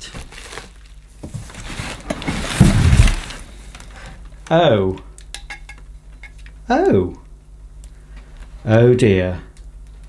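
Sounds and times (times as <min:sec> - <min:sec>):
packing paper rustling: 0:00.0 - 0:04.0.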